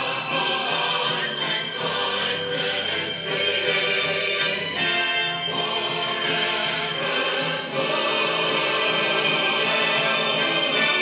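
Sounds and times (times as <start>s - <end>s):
choir singing: 0.0s - 11.0s
orchestral accompaniment: 0.0s - 11.0s.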